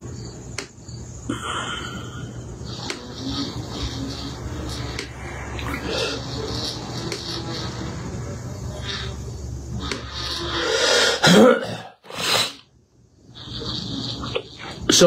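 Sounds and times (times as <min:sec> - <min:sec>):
low room hum: 0:00.0 - 0:15.0
man coughing: 0:01.3 - 0:02.3, 0:11.2 - 0:12.0.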